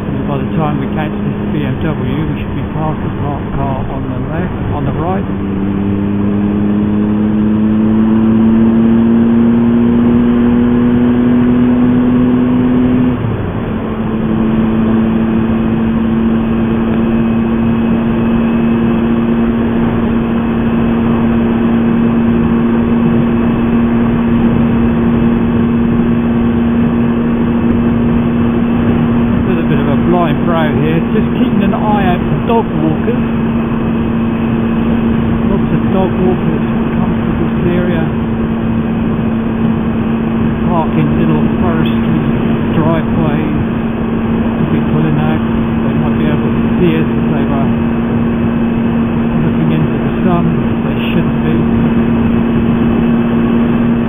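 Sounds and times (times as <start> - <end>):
motorcycle engine running: 0.0 - 54.0
wind and road noise: 0.0 - 54.0.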